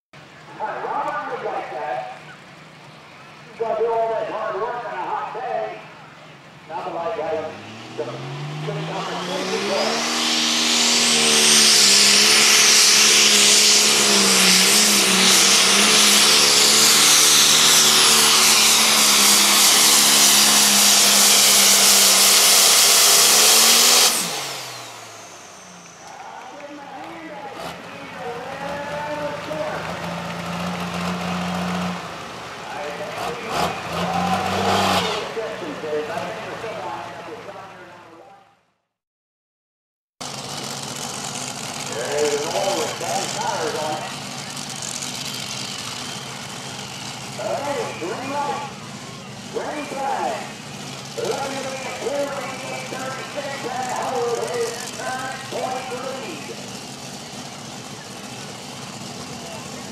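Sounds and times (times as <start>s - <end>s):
tractor diesel engine revving: 0.6s - 37.9s, 40.2s - 59.9s
turbo whine: 7.2s - 27.0s.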